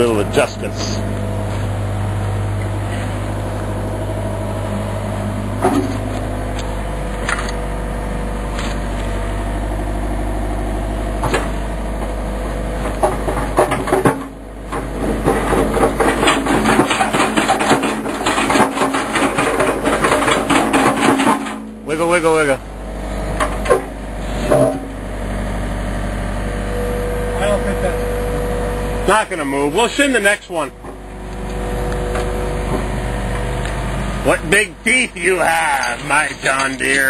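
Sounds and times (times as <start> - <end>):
diesel engine idling: 0.0 - 21.0, 21.6 - 37.0
dense fast rattle: 13.0 - 22.5, 34.5 - 37.0.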